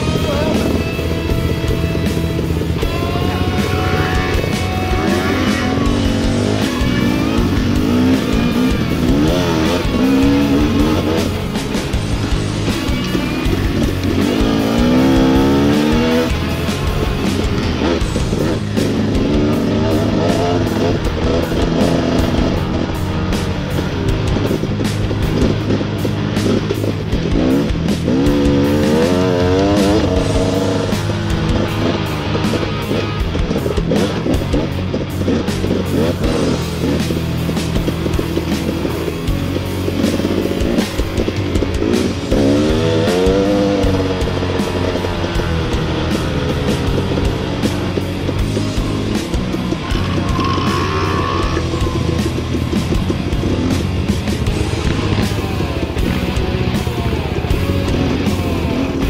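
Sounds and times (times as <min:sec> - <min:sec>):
dirt bike engine revving: 0:00.0 - 0:59.0
music playing: 0:00.0 - 0:59.0.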